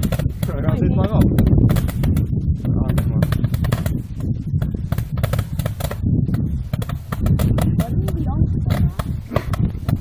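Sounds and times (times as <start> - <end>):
fireworks popping: 0.0 - 10.0.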